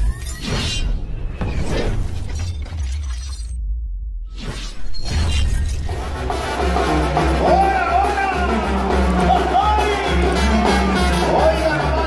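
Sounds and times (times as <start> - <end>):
dramatic music: 5.0 - 12.0.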